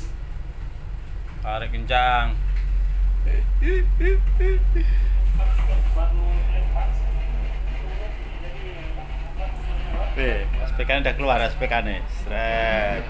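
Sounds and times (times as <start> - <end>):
diesel engines droning: 0.0 - 13.0
faint voices: 3.3 - 13.0.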